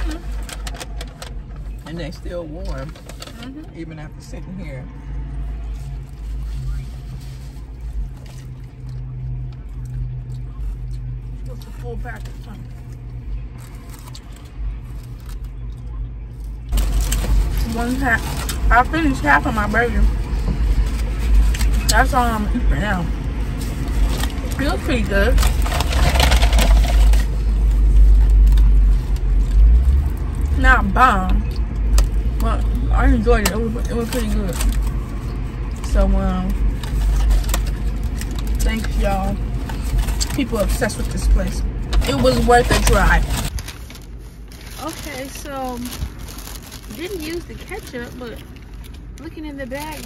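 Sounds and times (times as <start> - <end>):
car engine idling: 0.0 - 50.0.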